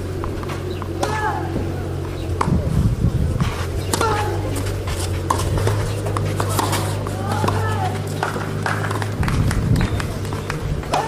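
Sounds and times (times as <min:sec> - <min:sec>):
low hum: 0:00.0 - 0:11.0
tennis ball hit with rackets: 0:00.2 - 0:02.7, 0:03.4 - 0:11.0.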